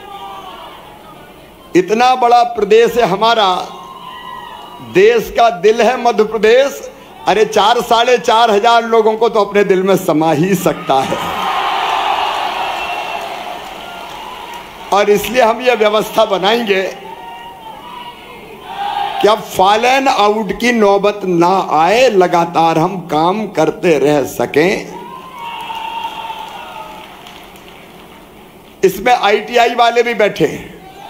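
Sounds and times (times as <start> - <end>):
crowd noise in a hall: 0.0 - 31.0
crowd cheering and clapping: 10.9 - 16.0, 25.0 - 28.8
audience applause: 11.0 - 15.4, 25.2 - 28.8.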